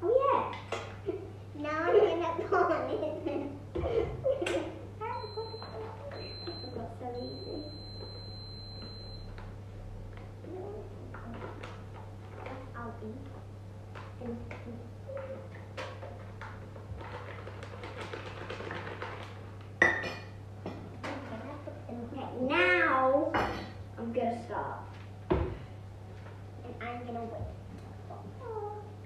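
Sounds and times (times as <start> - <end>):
child's voice: 0.0 - 0.7, 1.6 - 3.5, 5.0 - 7.7, 10.4 - 11.5, 12.4 - 13.3, 14.2 - 15.5, 21.2 - 24.9, 26.6 - 29.0
bowls and utensils clinking: 19.8 - 21.4.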